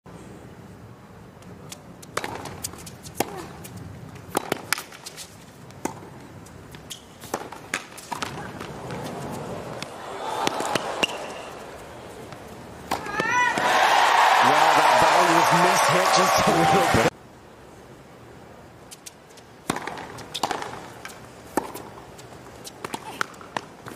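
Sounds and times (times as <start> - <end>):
racket striking ball: 2.1 - 3.6, 4.3 - 5.0, 5.8 - 6.2, 7.2 - 11.5, 12.9 - 13.7, 19.6 - 21.9
ball bouncing: 5.8 - 6.1, 6.7 - 9.2
crowd noise: 8.3 - 17.1.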